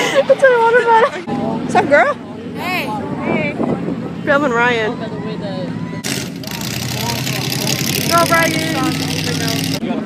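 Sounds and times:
truck engines running: 0.0 - 10.0.

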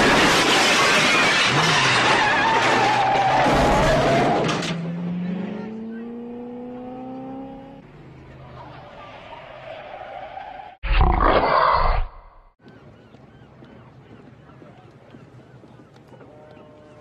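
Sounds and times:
car engine accelerating: 4.4 - 8.8.

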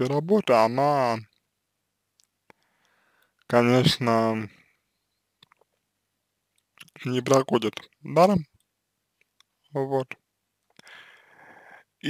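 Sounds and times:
man's voice: 3.5 - 4.5, 6.9 - 8.5.

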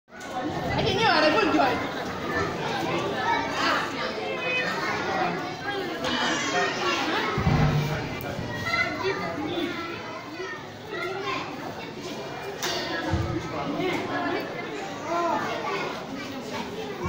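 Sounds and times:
children chattering and calling out: 0.1 - 17.0
low thump: 7.4 - 9.0.

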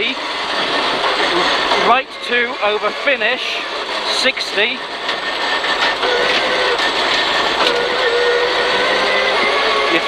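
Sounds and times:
car engine high revving: 0.0 - 10.0
road noise on gravel: 0.0 - 10.0.

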